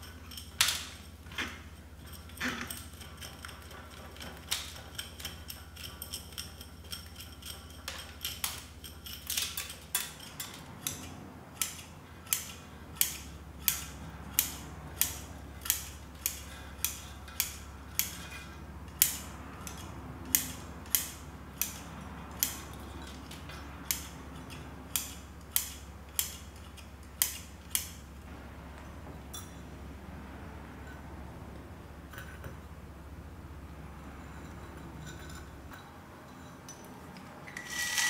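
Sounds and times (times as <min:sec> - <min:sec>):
metal pick scratching roots: 0:00.0 - 0:27.9, 0:37.5 - 0:38.0.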